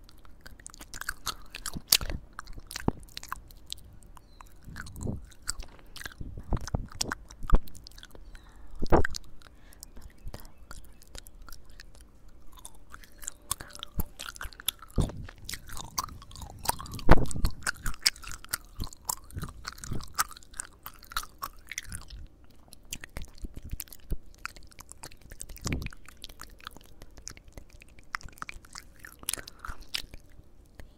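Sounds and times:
gum chewing mouth sounds: 0.0 - 30.9.

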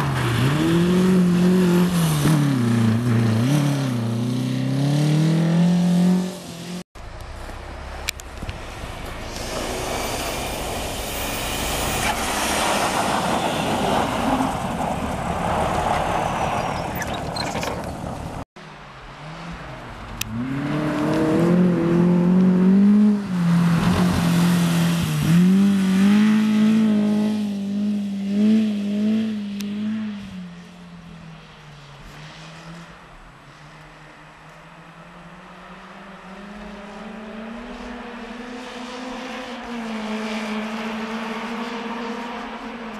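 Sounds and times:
hiss: 9.2 - 12.5.

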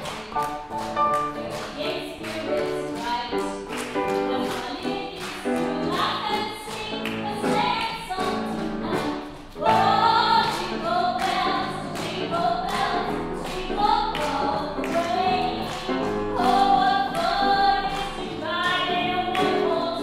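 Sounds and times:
grand piano accompaniment: 0.0 - 20.0
woman singing with vibrato: 0.0 - 20.0.

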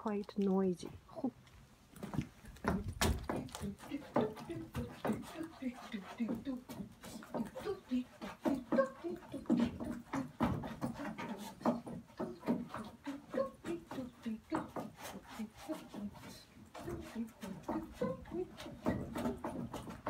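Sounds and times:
boot heels knocking on wood: 2.0 - 5.2
woman scat-singing: 2.6 - 19.6.

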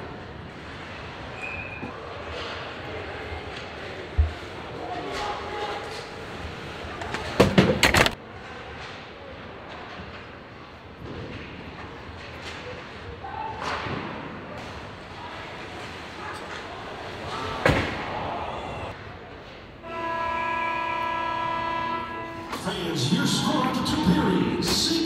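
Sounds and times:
goal horn blasting: 19.8 - 22.8.

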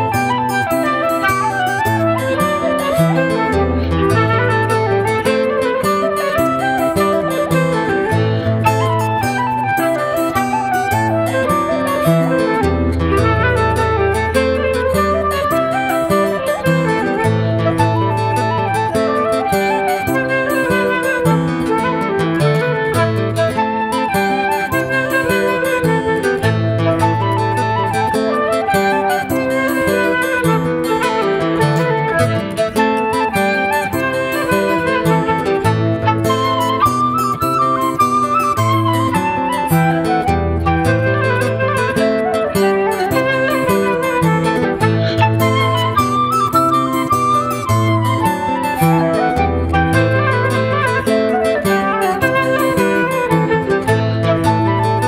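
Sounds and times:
fingerpicked acoustic guitar: 0.0 - 55.0
flute playing folk melody: 0.0 - 55.0.

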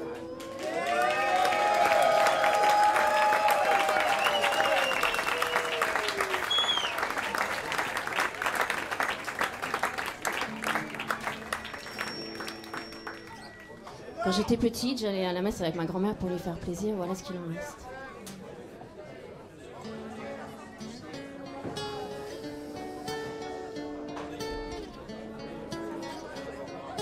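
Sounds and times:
audience applauding: 0.0 - 14.2
people whooping: 0.2 - 8.1
whistle: 4.1 - 5.7, 6.4 - 7.1.

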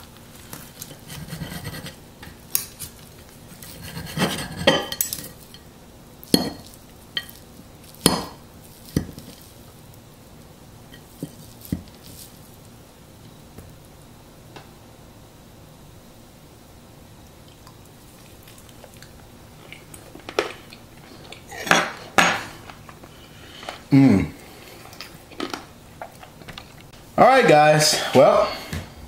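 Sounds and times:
cutlery scraping on plate: 0.8 - 2.0, 3.6 - 5.6
cutlery clinking: 3.8 - 5.6, 6.3 - 7.4.

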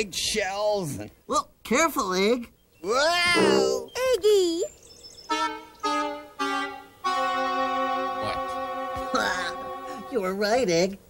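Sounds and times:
comic horn musical sting: 5.3 - 10.3.

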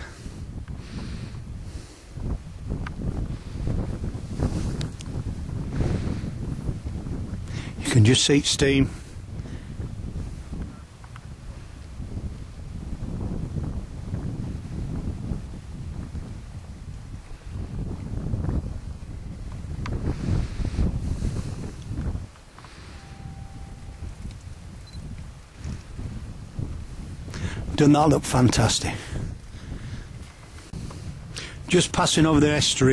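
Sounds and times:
wind buffeting microphone: 0.0 - 32.9
low rumbling noise: 8.8 - 28.2.

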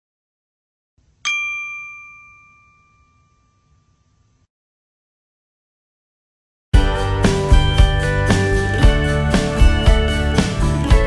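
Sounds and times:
bright bell-like ding: 1.2 - 4.1.

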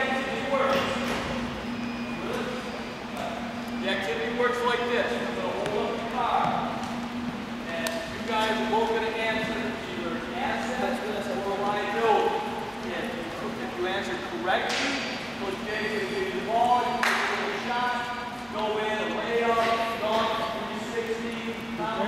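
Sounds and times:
man talking: 0.0 - 1.2, 3.2 - 6.8, 7.6 - 22.0.

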